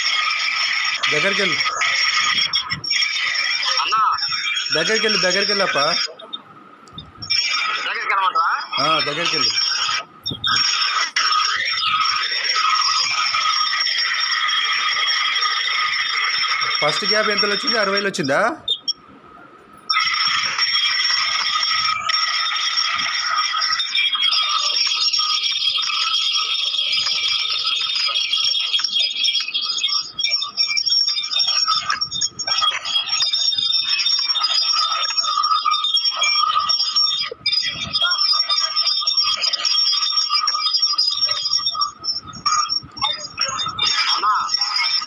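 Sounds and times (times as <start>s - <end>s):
drilling rig high-pitched whine: 0.0s - 45.0s.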